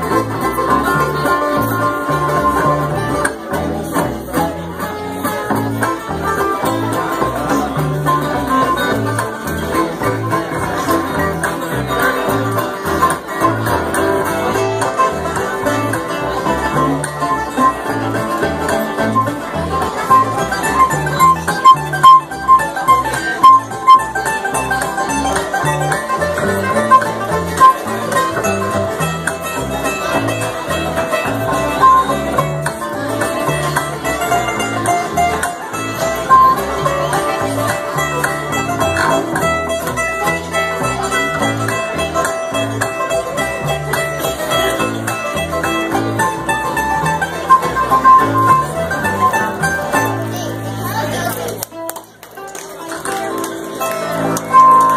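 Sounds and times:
bluegrass band playing: 0.0 - 54.9
sharp picked notes: 8.0 - 39.8, 43.1 - 50.9, 53.9 - 54.9.

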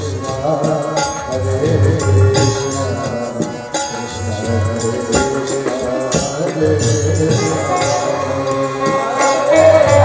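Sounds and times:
drum beats: 0.0 - 10.0
jingling hand percussion: 0.0 - 10.0
reed keyboard melody: 0.0 - 10.0.

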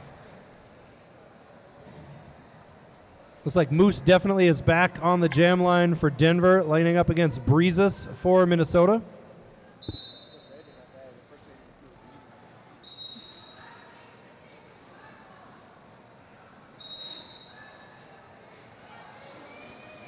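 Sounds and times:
faint hall noise: 0.0 - 20.0
whistle short high blasts: 9.8 - 10.8, 12.8 - 13.6, 16.8 - 17.8.

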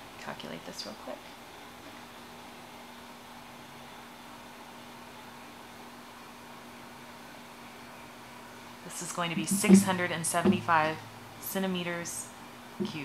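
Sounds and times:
steady low hiss: 6.8 - 13.0
faint even hum: 7.2 - 13.0.

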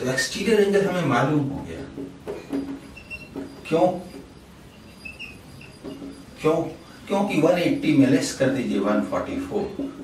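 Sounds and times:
faint low room hum: 0.0 - 10.0
marker squeaking on whiteboard: 2.2 - 10.0.

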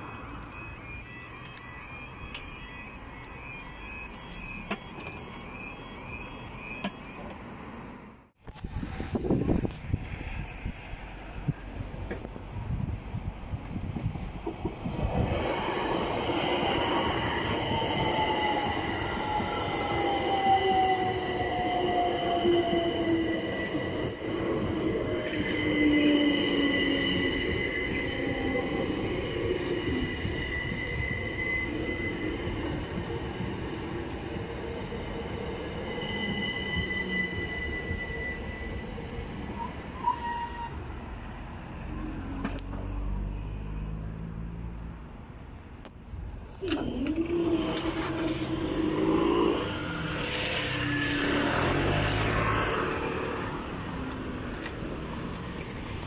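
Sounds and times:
electric train braking whine: 0.0 - 10.9, 15.0 - 42.5, 46.4 - 56.0
high wheel squeal: 15.4 - 42.3, 46.7 - 54.0.

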